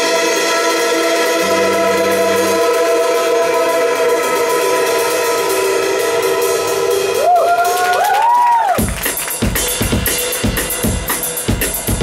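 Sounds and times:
drums: 0:00.0 - 0:12.0
ringing sustained chords: 0:01.3 - 0:06.6.

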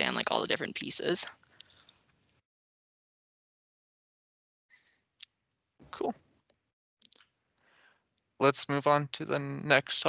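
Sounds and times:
person speaking: 0:00.0 - 0:01.8, 0:05.9 - 0:06.1, 0:08.4 - 0:10.0.

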